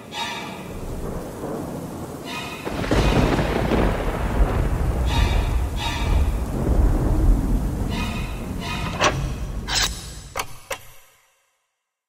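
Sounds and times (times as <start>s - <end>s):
steady rain: 0.0s - 10.4s
rolling thunder: 0.6s - 10.3s.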